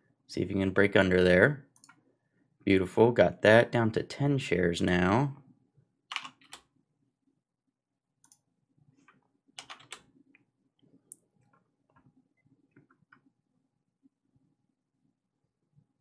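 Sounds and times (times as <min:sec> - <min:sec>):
computer keyboard clicks: 0:06.1 - 0:06.7, 0:09.6 - 0:10.0.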